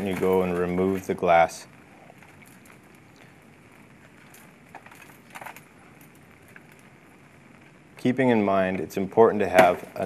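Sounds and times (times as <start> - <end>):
low steady hiss: 0.0 - 10.0
glass crunching and clicking: 2.1 - 7.2.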